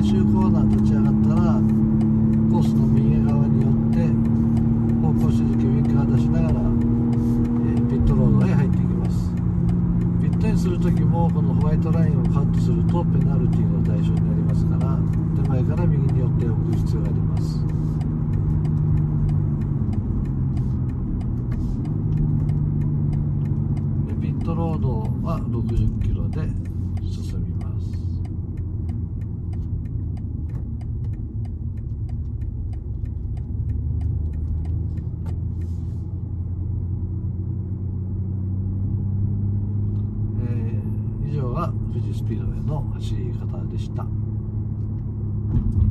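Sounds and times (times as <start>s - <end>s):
light ticks: 0.0s - 36.3s, 39.8s - 45.1s
car engine from inside cabin: 0.0s - 45.9s.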